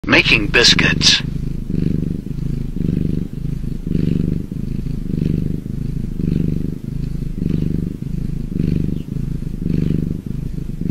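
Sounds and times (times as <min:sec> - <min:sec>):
cat purring: 0:00.0 - 0:10.9.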